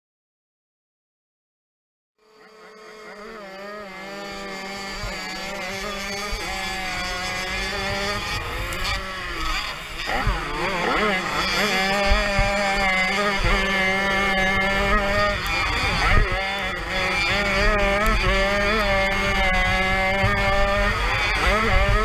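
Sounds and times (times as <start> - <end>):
two-stroke motocross engines racing: 2.2 - 22.0.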